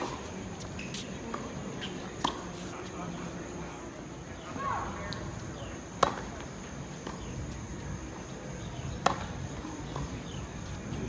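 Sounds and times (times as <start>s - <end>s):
tennis ball pock: 0.0s - 2.6s, 6.0s - 7.4s, 9.0s - 10.2s.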